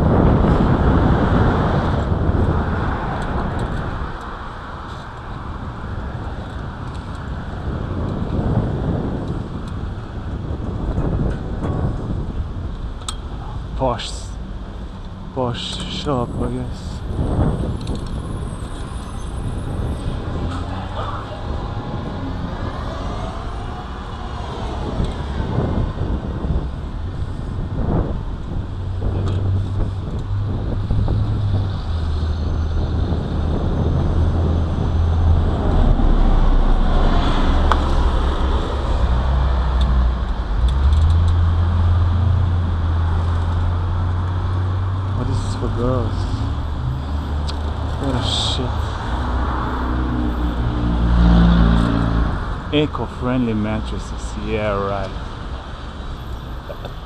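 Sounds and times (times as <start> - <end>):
cars passing: 0.0 - 57.0
steady low rumble: 0.0 - 57.0.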